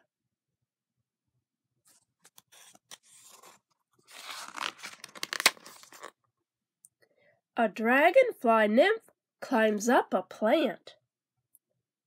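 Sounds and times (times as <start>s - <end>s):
book page turning: 1.9s - 6.2s.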